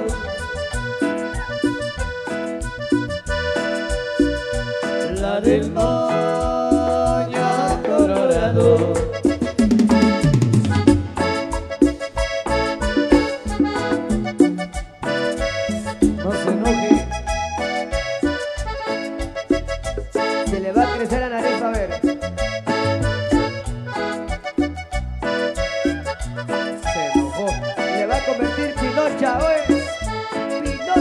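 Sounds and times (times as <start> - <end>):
marimba band dance music: 0.0 - 31.0.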